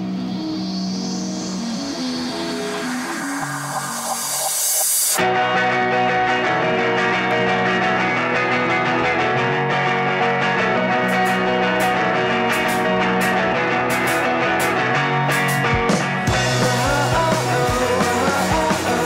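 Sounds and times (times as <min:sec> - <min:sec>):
droning passage: 0:00.0 - 0:05.2
rising hiss: 0:00.0 - 0:05.2
electric guitar rock band playing: 0:00.0 - 0:19.0.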